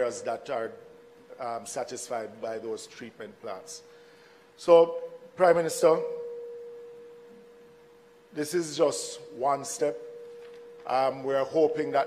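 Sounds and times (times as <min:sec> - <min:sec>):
microphone feedback ringing: 0:03.4 - 0:12.0.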